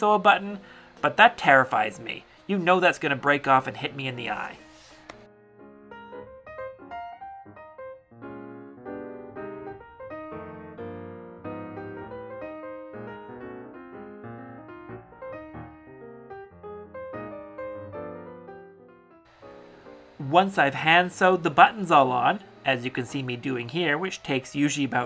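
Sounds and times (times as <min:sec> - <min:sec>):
piano music: 0:00.0 - 0:25.0.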